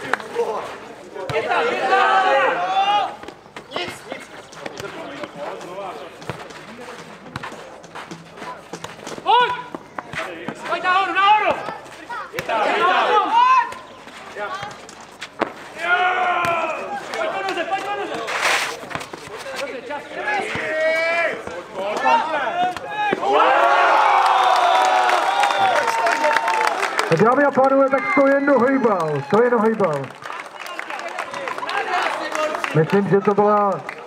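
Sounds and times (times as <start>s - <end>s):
players shouting: 0.0s - 7.6s, 8.4s - 14.8s, 15.6s - 18.4s, 19.8s - 33.3s
crowd cheering and shouting: 1.2s - 3.3s, 10.8s - 13.9s, 15.7s - 18.2s, 20.2s - 33.7s.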